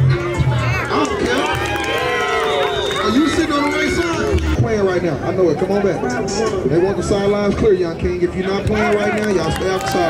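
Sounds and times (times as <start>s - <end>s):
crowd shouting: 0.0s - 4.6s.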